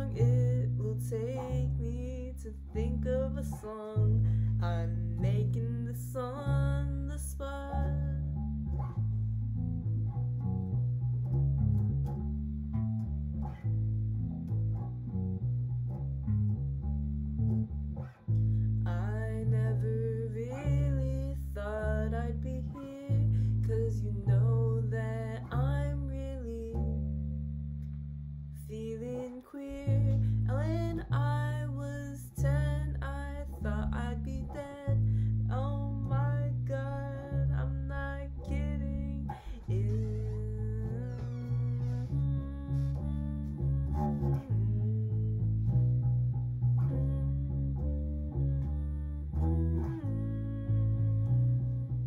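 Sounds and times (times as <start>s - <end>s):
electric bass plucking: 0.0s - 52.0s
person humming: 32.1s - 45.8s, 46.8s - 51.9s.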